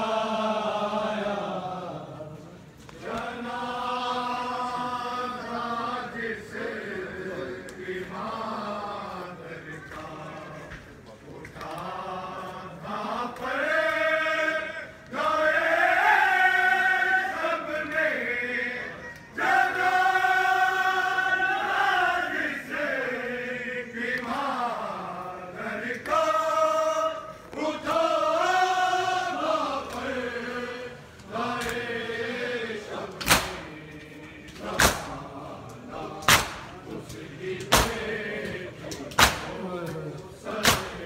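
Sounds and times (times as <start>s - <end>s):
men chanting a lament: 0.0s - 41.0s.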